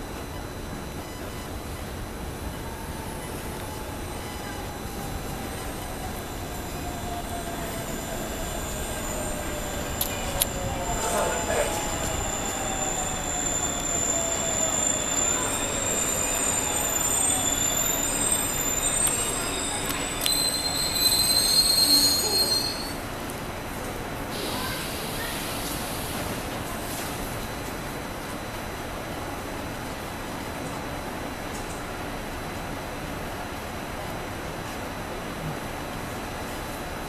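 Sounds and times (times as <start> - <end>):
train motor whine: 0.0 - 22.8
brake squeal: 0.2 - 23.0
thin high whistle: 0.9 - 23.0.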